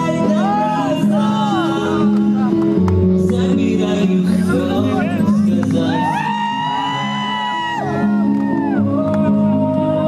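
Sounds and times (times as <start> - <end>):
crowd whooping: 5.8 - 9.6.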